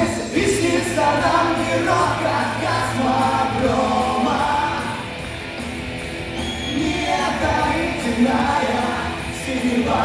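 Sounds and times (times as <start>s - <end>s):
person singing: 0.0s - 5.1s, 6.7s - 10.0s
bass guitar: 0.0s - 10.0s
electric guitars: 0.0s - 10.0s.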